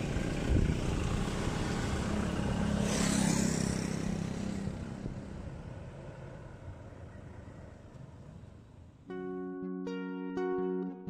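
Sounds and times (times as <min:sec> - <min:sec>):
passing vehicle road noise: 0:00.0 - 0:09.0.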